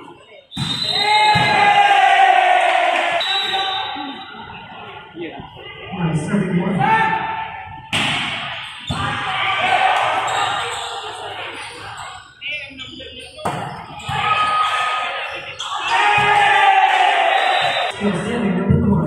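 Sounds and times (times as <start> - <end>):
people's voices in large hall: 0.0 - 19.0.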